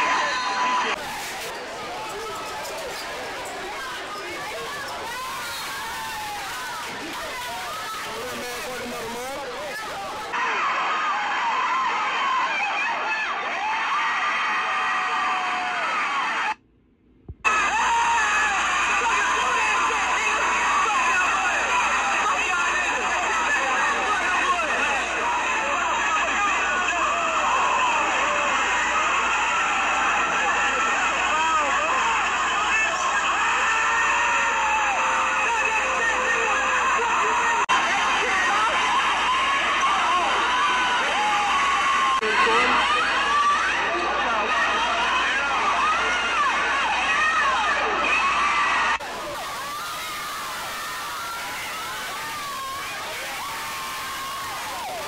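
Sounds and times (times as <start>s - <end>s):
crowd shouting and cheering: 0.0s - 16.6s, 17.3s - 55.0s.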